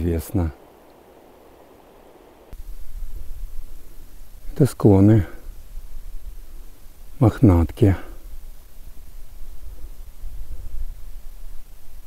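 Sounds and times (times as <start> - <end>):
faint outdoor hiss: 0.0 - 12.0
low rumble on microphone: 2.6 - 12.0.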